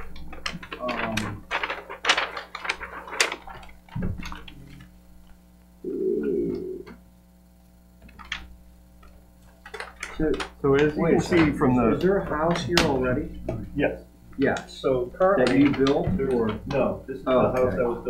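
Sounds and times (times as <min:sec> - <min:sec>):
paper crackling and crinkling: 0:00.0 - 0:05.5, 0:08.0 - 0:13.5, 0:14.4 - 0:18.0
room hum: 0:00.0 - 0:18.0
muffled murmur: 0:10.2 - 0:18.0.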